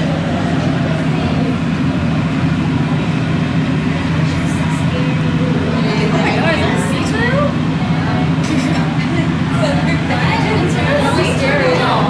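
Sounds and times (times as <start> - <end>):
faint voices: 0.0 - 12.0
low machine hum: 0.0 - 12.0.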